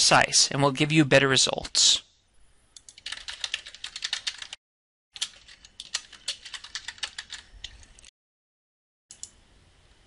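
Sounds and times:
fast keyboard typing: 2.8s - 4.6s, 5.2s - 8.1s.

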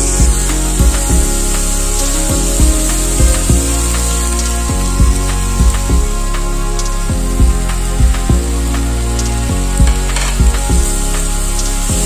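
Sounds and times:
music with drum beat: 0.0s - 12.0s.

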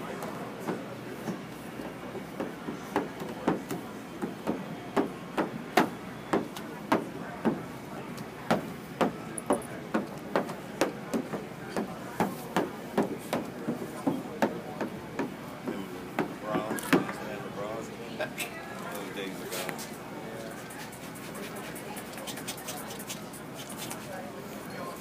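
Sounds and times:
faint background voices: 0.0s - 25.0s.

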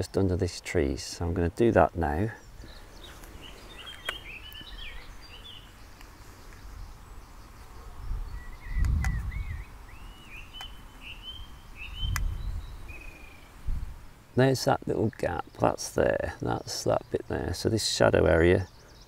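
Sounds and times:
small songbirds chirping: 0.0s - 19.0s.

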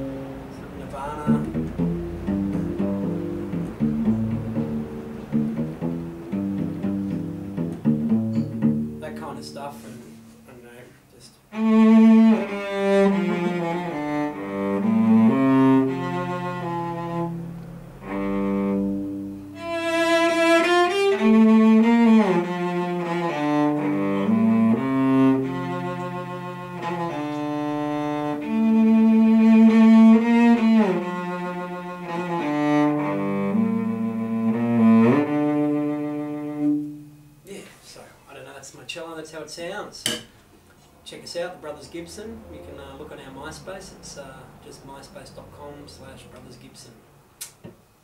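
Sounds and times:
solo cello melody: 0.0s - 10.6s, 11.5s - 37.4s.

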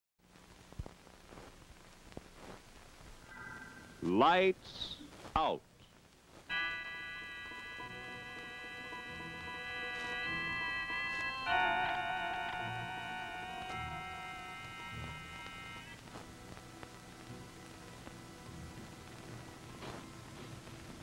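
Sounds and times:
title music held chords: 6.5s - 16.0s.

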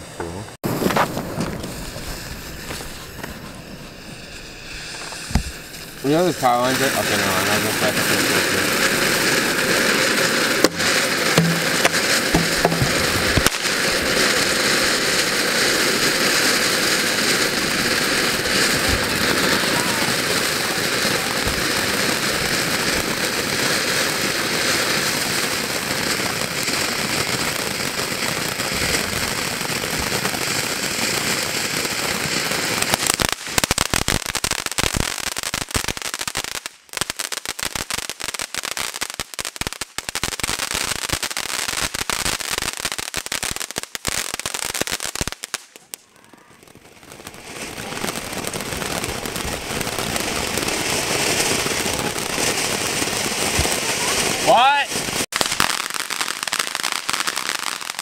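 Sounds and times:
fireworks crackling: 0.0s - 58.0s
fireworks fountain hissing: 0.0s - 58.0s.

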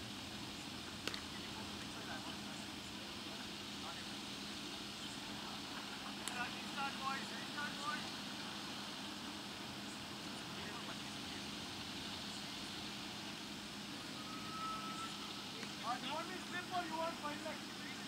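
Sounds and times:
open-air background noise: 0.0s - 18.0s
steady low hum: 0.0s - 18.0s
distant voices calling out: 0.6s - 18.0s
brief steady tone: 14.1s - 15.4s.

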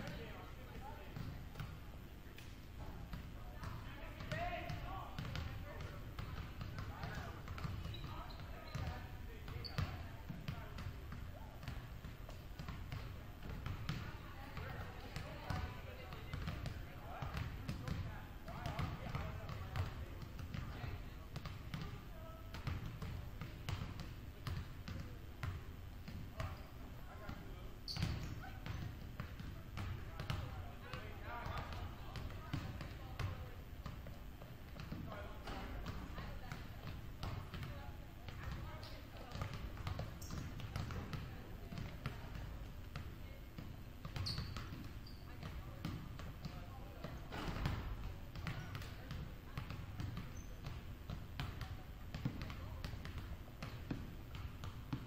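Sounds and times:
basketballs bouncing on wooden floor: 2.8s - 55.0s.

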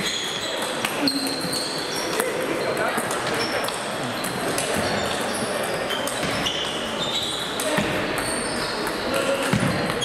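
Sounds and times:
table tennis balls clicking: 3.0s - 10.0s.

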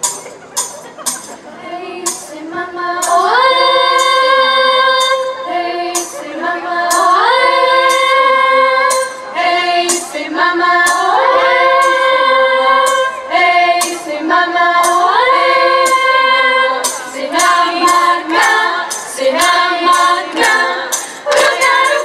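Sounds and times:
children's choir singing: 1.4s - 22.0s.

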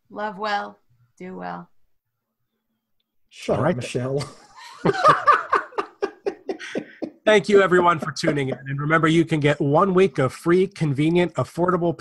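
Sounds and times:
person laughing in short bursts: 5.7s - 7.2s, 7.8s - 8.7s.

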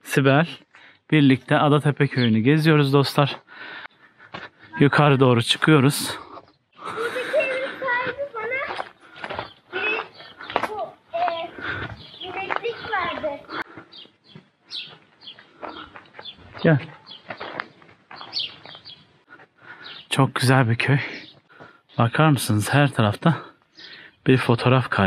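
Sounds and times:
birds chirping: 0.0s - 25.0s
indistinct talking: 4.5s - 13.7s.

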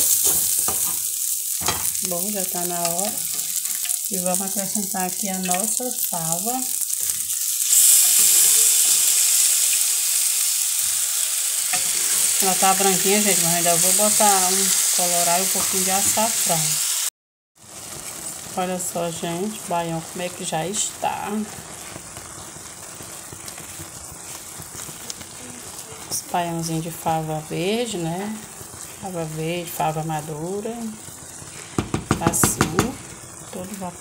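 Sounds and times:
pot crackling and bubbling: 0.0s - 9.6s, 10.8s - 16.3s, 17.6s - 34.0s
rice sizzling in hot fat: 0.0s - 34.0s.

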